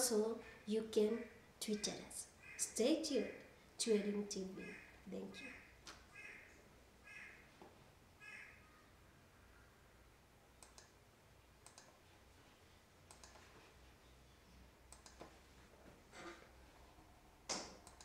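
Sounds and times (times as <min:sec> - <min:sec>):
faint calls: 0:04.4 - 0:07.5, 0:08.2 - 0:09.8
faint scattered clicks: 0:10.6 - 0:11.0, 0:11.6 - 0:12.0, 0:13.0 - 0:13.6, 0:14.9 - 0:15.4, 0:17.5 - 0:18.0.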